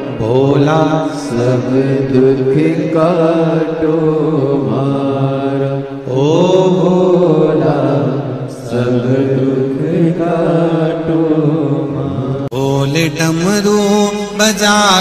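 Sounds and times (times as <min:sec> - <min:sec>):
person singing long gliding notes: 0:00.0 - 0:15.0.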